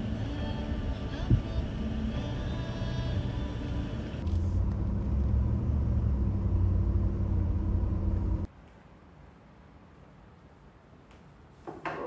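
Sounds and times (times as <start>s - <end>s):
car engine and road rumble: 0.0s - 8.5s.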